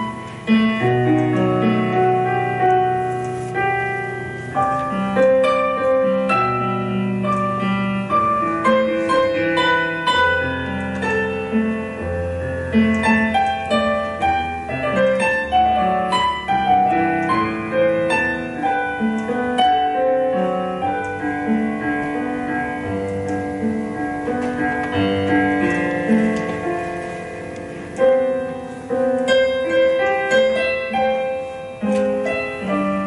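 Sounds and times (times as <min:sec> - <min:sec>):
piano playing hymn chords: 0:00.0 - 0:33.0.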